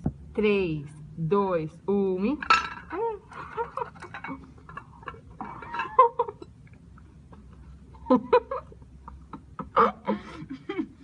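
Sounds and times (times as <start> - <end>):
girls laughing: 7.4 - 11.0.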